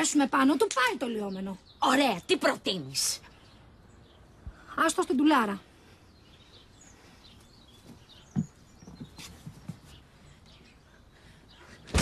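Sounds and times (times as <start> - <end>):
faint bird chirps: 0.0 - 11.9.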